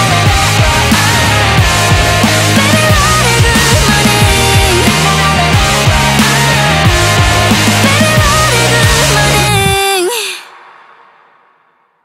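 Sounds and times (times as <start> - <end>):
pop band playing: 0.0 - 10.4
female vocal sliding down: 7.8 - 10.5.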